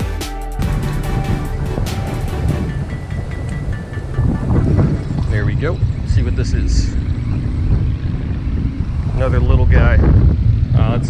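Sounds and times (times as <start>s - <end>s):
electronic background music: 0.0s - 8.5s
wind rumble on microphone: 0.6s - 11.0s.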